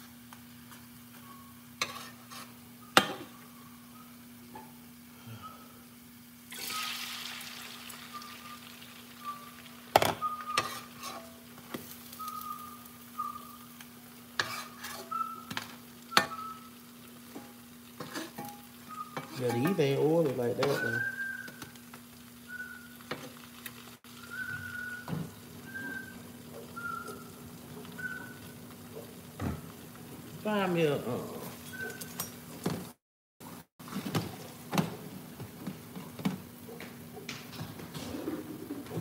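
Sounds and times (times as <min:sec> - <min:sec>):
pancakes sizzling in skillet: 0:00.0 - 0:05.2, 0:06.4 - 0:32.6
spatula and fork clinking pan: 0:01.8 - 0:03.3, 0:10.0 - 0:11.4, 0:14.4 - 0:15.6.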